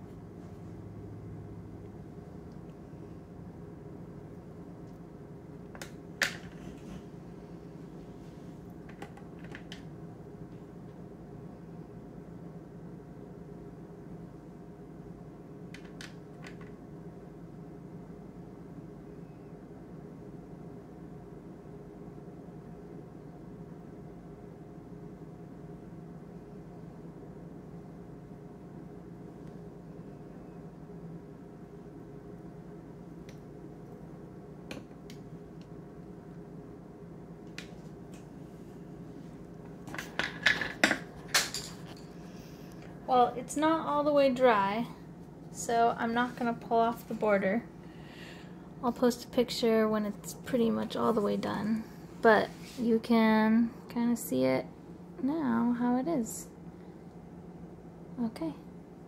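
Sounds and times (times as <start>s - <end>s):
low room hum: 0.0s - 59.0s
knocks and clatter of handling: 39.8s - 42.1s.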